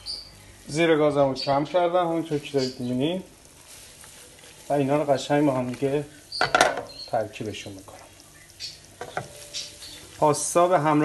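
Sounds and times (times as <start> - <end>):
pasta sizzling in a frying pan: 0.0 - 11.0
soft scrapes in pan: 3.5 - 4.8.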